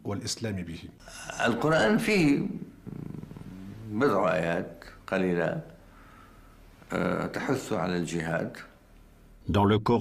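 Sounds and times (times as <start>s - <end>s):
man speaking: 0.0s - 2.7s, 9.4s - 10.0s.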